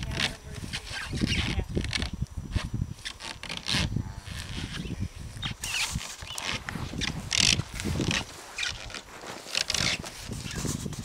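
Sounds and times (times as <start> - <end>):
plastic sled scraping: 5.6 - 11.0.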